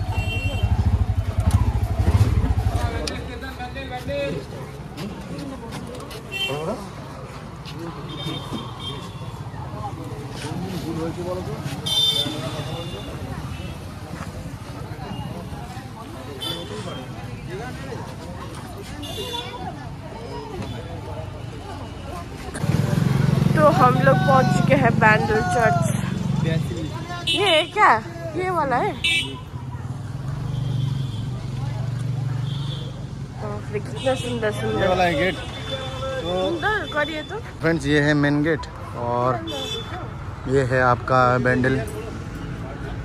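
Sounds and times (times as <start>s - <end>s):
vehicle engine noise: 0.0s - 12.6s, 22.2s - 27.0s.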